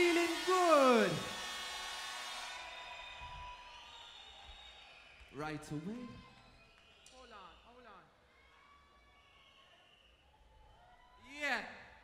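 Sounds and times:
man calling over sound system: 0.0 - 1.3.

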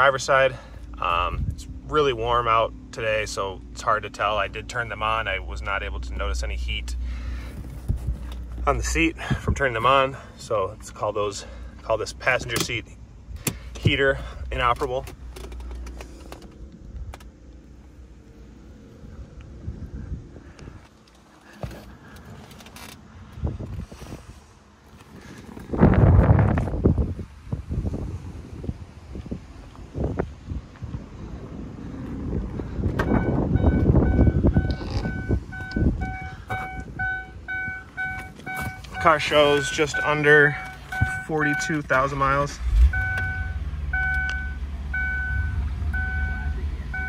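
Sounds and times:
car warning chime beeps: 33.0 - 47.0.

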